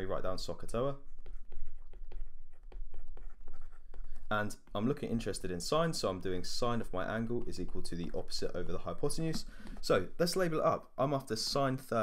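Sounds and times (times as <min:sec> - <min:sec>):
stylus writing on tablet screen: 0:00.0 - 0:05.6.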